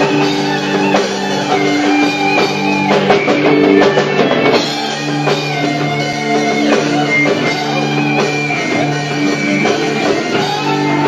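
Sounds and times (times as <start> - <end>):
drum and cymbal hits: 0.0 - 11.0
electric guitar chords: 0.0 - 11.0
live rock band playing: 0.0 - 11.0.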